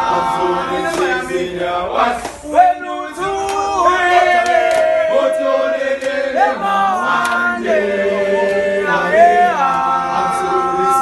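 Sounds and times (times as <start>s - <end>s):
men singing unaccompanied chant: 0.0s - 11.0s.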